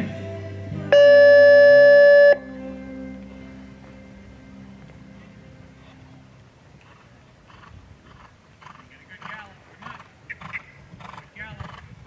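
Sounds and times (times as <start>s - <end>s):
steady buzzer tone: 0.9s - 2.4s.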